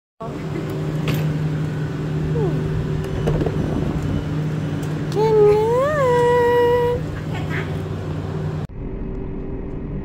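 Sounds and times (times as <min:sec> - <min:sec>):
train low hum: 0:00.2 - 0:10.0.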